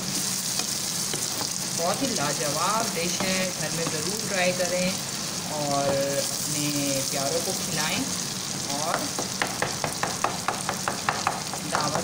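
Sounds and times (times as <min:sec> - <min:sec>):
curry sizzling in oil: 0:00.0 - 0:12.0.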